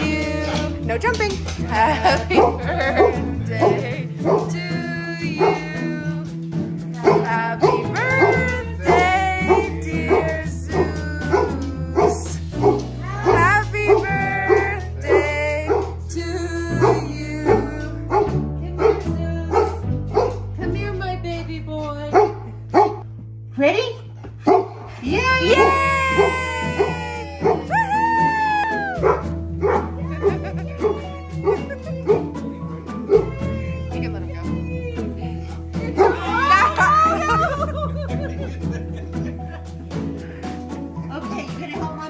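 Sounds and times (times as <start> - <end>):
background music with bass: 0.0 - 42.0
dogs barking: 2.1 - 5.8, 7.0 - 16.0, 16.7 - 20.5, 22.1 - 23.0, 24.4 - 27.7, 29.0 - 32.4, 33.0 - 33.4, 35.9 - 37.6.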